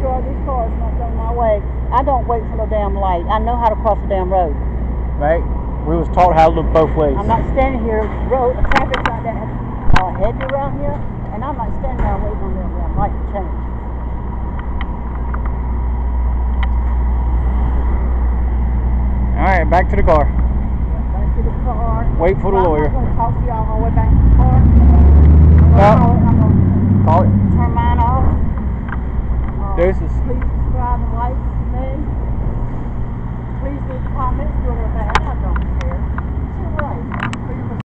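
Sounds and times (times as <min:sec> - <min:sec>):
cars passing: 0:00.0 - 0:37.8
pickup truck driving past: 0:00.0 - 0:37.8
road traffic rumble: 0:00.0 - 0:37.8.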